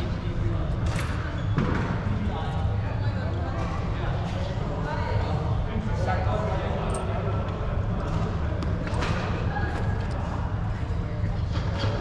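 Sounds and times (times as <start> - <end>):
murmur of people talking: 0.0 - 12.0.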